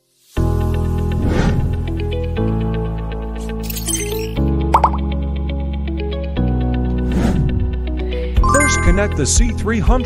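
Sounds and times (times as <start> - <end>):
background music with ticking beat: 4.7 - 5.2, 8.4 - 10.0
rising blips sound effect: 8.4 - 9.4.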